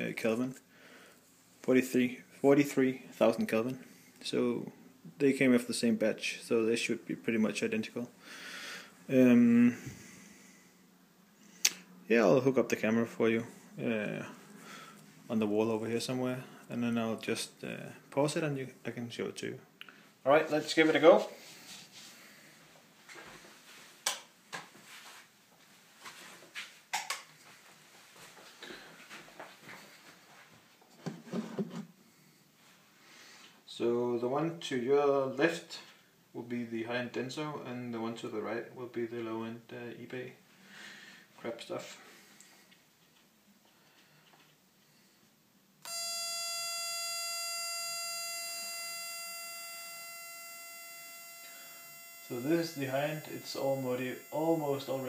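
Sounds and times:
high-pitched electronic whine: 0:45.8 - 0:55.0.

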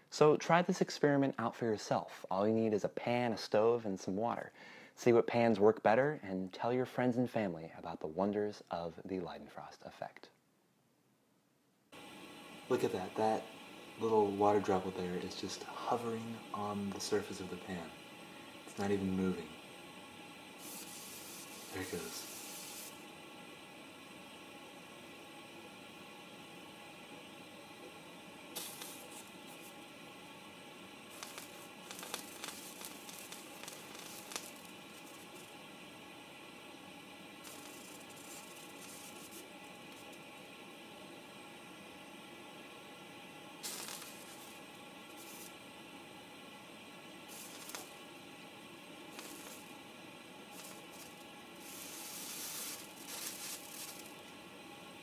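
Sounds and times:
water sizzling on hot griddle: 0:12.0 - 0:55.0.

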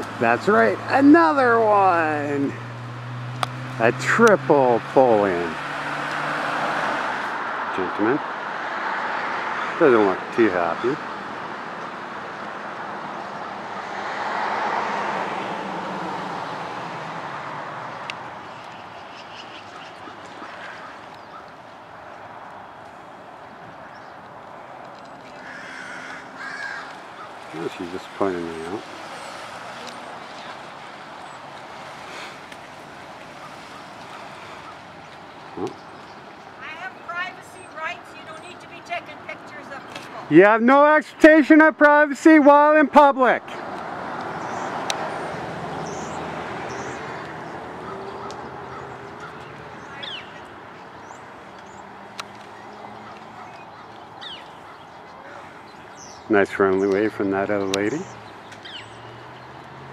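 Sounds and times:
outdoor background: 0:00.0 - 0:59.9
bird harsh call: 0:18.4 - 0:21.6, 0:25.4 - 0:31.4, 0:33.3 - 0:39.0, 0:44.4 - 0:56.3.

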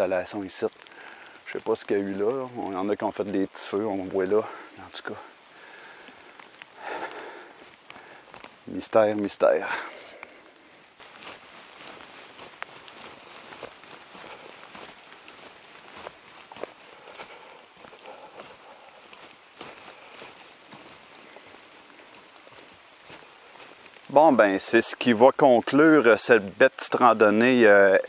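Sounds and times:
footsteps on wet dirt trail: 0:00.0 - 0:28.0.

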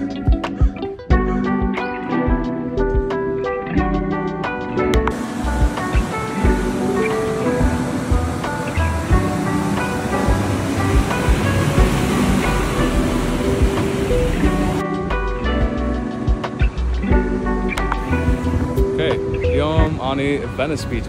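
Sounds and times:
music with steady beat: 0:00.0 - 0:21.0
ocean surf breaking: 0:04.7 - 0:15.2.

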